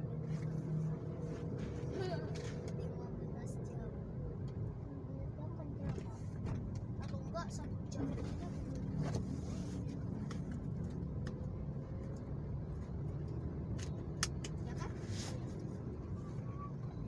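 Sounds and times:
car engine rumble and road noise: 0.0 - 17.0.

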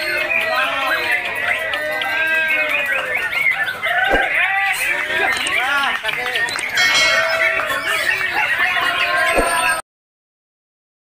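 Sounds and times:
songbirds singing: 0.0 - 9.8.

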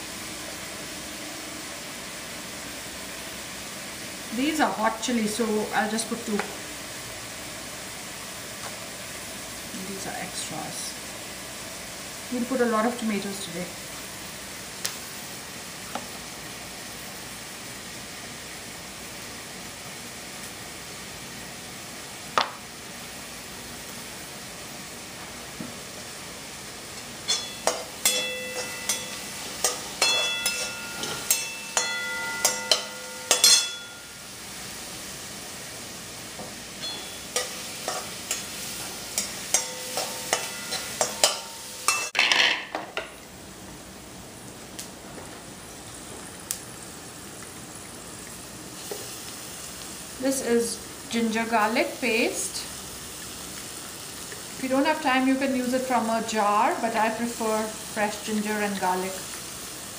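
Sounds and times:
onions sizzling in oil: 0.0 - 59.9
steel spoon clinking in pan: 27.2 - 34.2, 36.8 - 42.4.

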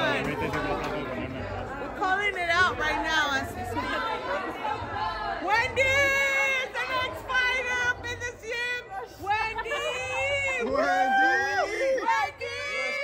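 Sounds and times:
people chattering excitedly: 0.0 - 13.0.

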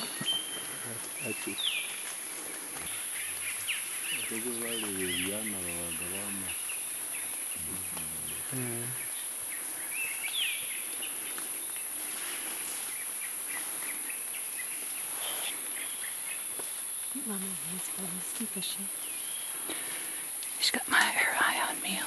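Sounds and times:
bird chirps: 0.0 - 12.0
insects droning: 0.0 - 22.0
low voice-like murmur: 2.8 - 6.6, 7.6 - 9.0.

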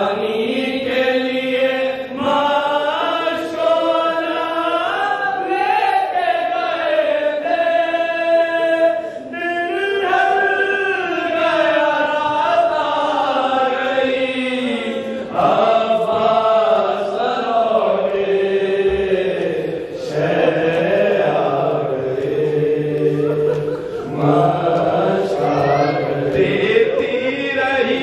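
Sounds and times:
men chanting a lament: 0.0 - 28.0.

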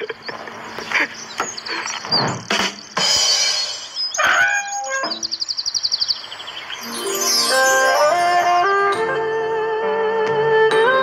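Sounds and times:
bird call gliding tones: 0.3 - 9.2
fast high-pitched bird trill: 1.1 - 9.0.

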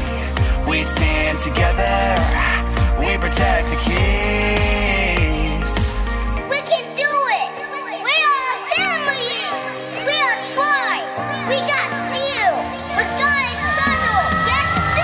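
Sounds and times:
children yelling: 6.5 - 15.0.

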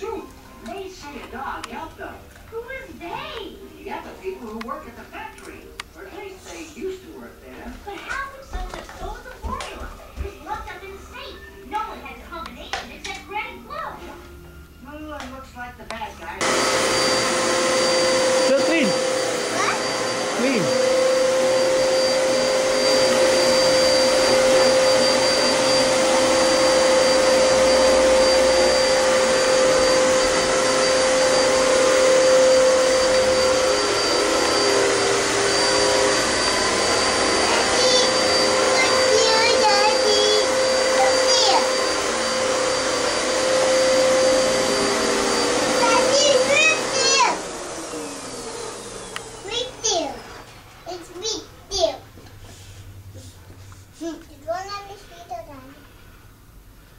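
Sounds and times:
vacuum cleaner running: 0.0 - 12.2, 16.2 - 51.0.

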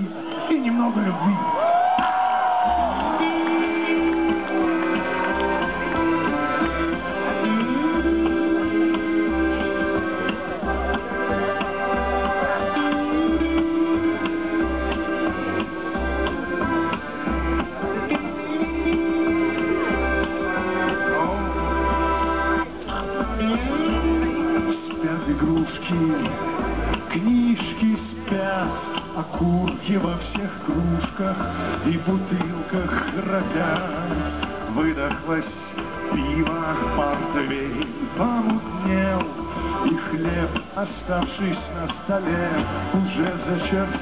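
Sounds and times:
electric guitar: 1.3 - 44.0
plucked double bass: 2.8 - 44.0
accordion: 2.9 - 44.0.

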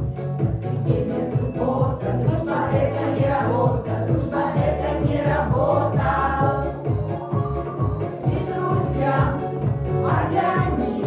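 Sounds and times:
accompaniment with beat and bass: 0.0 - 11.0
vocal group singing in chorus: 0.5 - 11.0.

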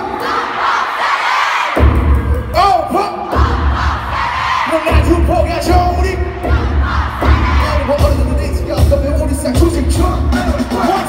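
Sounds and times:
crowd shouting along: 0.0 - 2.0, 2.7 - 5.3, 6.0 - 8.0
live pop music with bass beat: 1.7 - 11.0.

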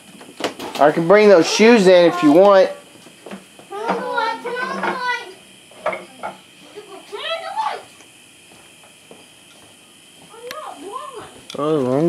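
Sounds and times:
indistinct voices talking: 0.9 - 2.9, 3.6 - 8.0.

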